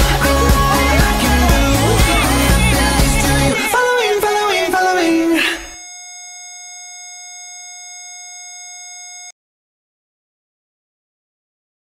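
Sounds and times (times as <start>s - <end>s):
patient monitor flatline tone: 5.6s - 9.3s.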